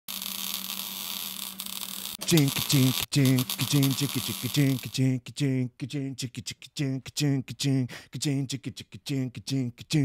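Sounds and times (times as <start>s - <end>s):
electrical static hiss: 0.1s - 4.9s.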